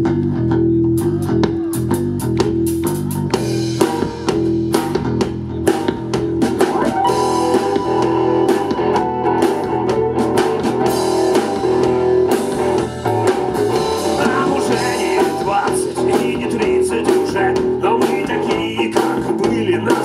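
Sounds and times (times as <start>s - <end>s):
bass guitar: 0.0s - 20.0s
drum kit beat: 0.0s - 20.0s
electric guitar: 0.0s - 20.0s
keyboard: 0.0s - 20.0s.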